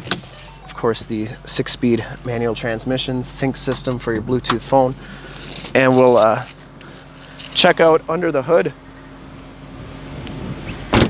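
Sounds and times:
car door shutting: 0.0 - 1.1, 10.2 - 11.0
shuffling and handling noise: 5.2 - 7.9.

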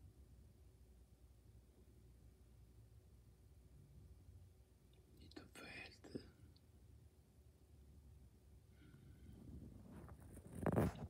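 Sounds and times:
person whispering: 5.2 - 6.6.

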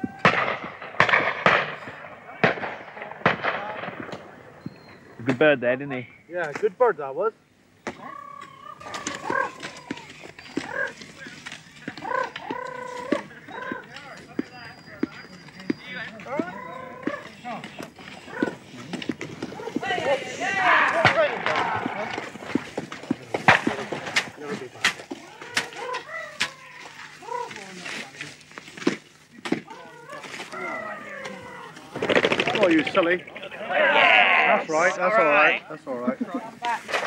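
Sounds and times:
indistinct voices talking: 0.0 - 37.0
dry reeds crackling and rustling: 17.1 - 33.2.

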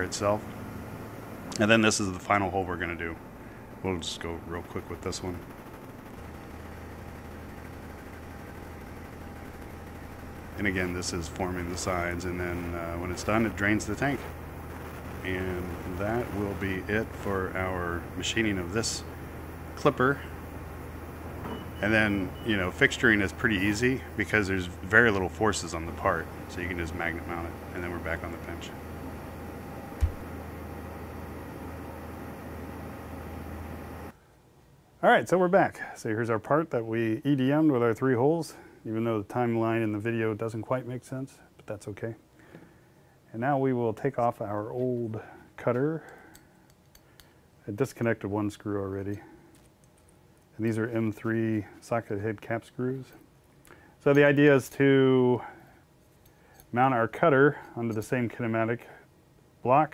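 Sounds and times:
machine humming with thin whine: 0.0 - 59.9
sharp thump: 30.0 - 30.2.

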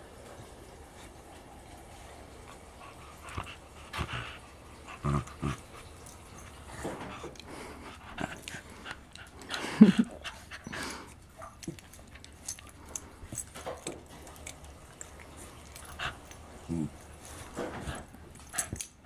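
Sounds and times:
dogs growling: 2.5 - 19.0.

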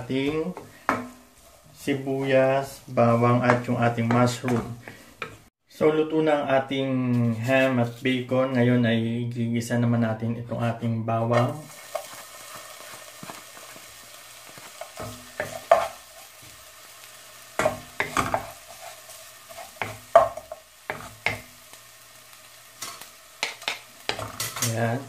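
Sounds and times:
wooden spatula scraping a pan: 0.1 - 5.5, 14.5 - 16.6, 17.6 - 21.5
garlic sizzling in oil: 11.4 - 25.0.

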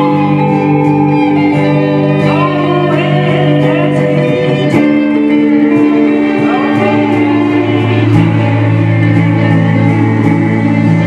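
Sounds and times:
slow blues on slide guitar: 0.0 - 11.0.

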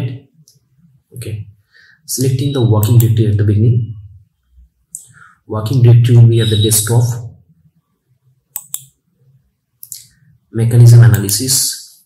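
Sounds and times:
person speaking: 1.1 - 4.1, 5.0 - 7.4, 9.8 - 12.0
computer mouse double-click: 8.5 - 9.0.

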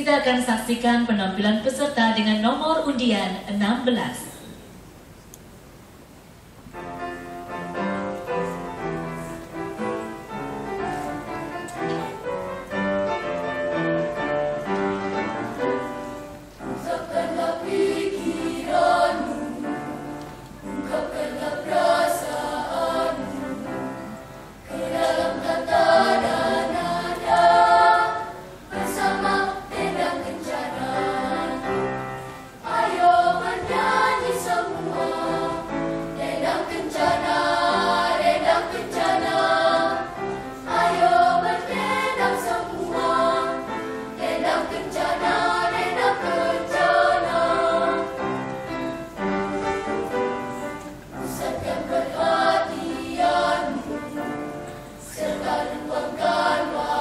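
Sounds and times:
children's choir singing: 7.7 - 57.0.

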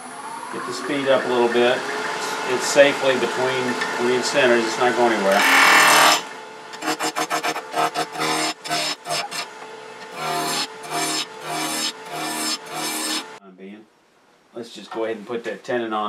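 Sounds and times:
gouge cutting wood on lathe: 5.2 - 13.4.

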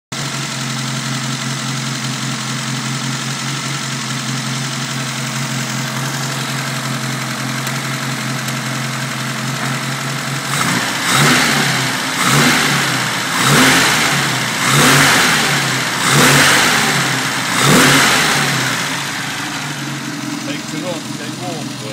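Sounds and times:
car engine idling and revving: 0.1 - 21.9.

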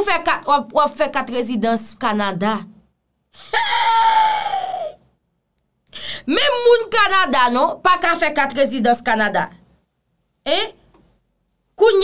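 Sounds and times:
woman squealing: 3.4 - 5.0.

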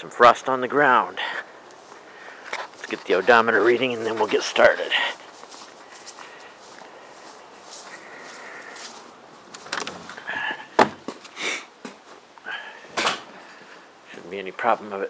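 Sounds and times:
footsteps on grass: 1.7 - 10.1.

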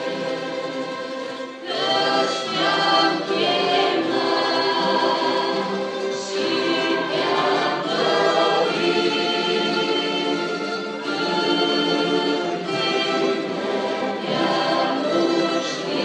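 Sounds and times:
choir singing: 0.0 - 16.0
orchestra playing a hymn: 0.0 - 16.0.

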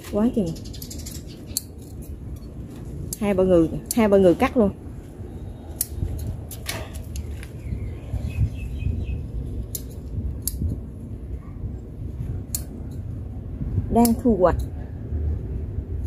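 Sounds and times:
low steady rumble: 0.0 - 16.0
scissors snipping stems: 2.7 - 4.5, 5.7 - 7.6, 9.6 - 10.8, 12.4 - 13.0.

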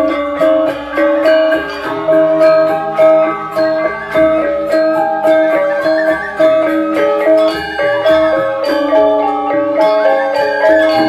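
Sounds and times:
gamelan metallophones playing: 0.0 - 11.0.

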